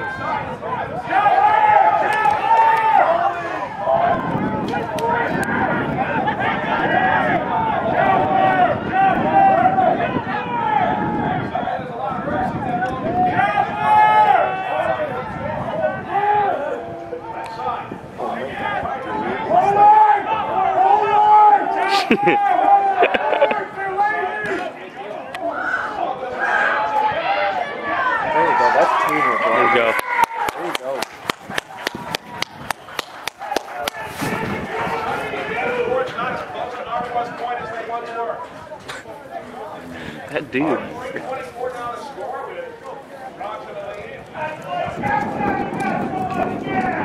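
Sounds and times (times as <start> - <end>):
people shouting and calling out: 0.0 - 47.0.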